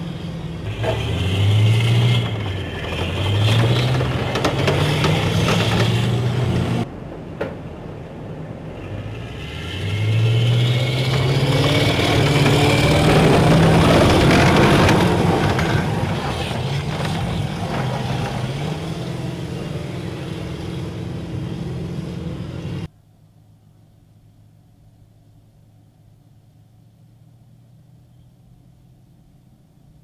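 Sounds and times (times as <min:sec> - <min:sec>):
tracked vehicle diesel engine revving: 0:00.0 - 0:06.9, 0:08.6 - 0:22.9.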